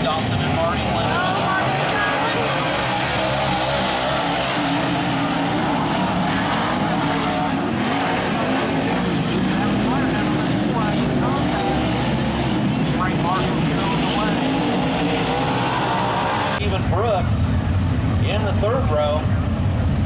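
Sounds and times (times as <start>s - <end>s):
race car engines at speed: 0.0s - 20.0s.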